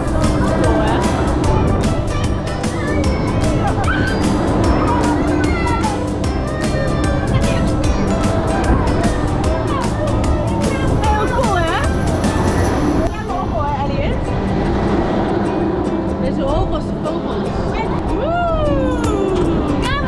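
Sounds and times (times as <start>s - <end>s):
amusement ride rumble: 0.0s - 20.0s
music playing: 0.0s - 20.0s.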